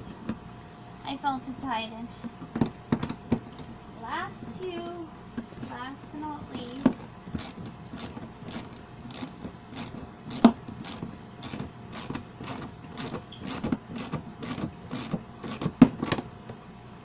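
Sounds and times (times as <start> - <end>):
ratchet wrench clicking: 6.6 - 15.7.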